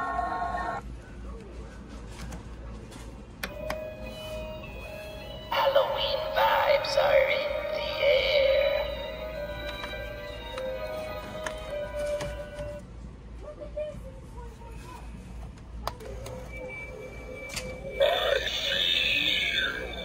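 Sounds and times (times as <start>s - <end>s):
spooky halloween music: 3.5s - 12.8s, 16.5s - 20.0s.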